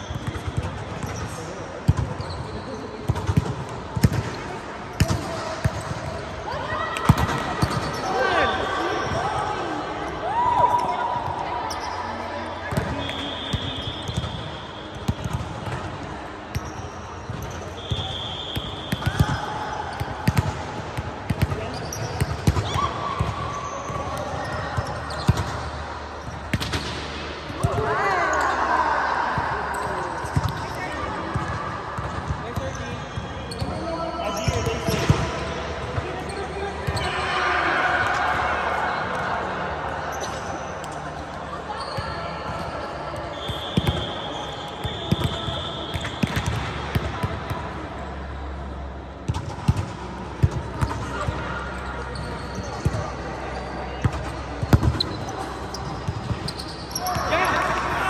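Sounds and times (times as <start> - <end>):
players calling and shouting: 0.0 - 58.0.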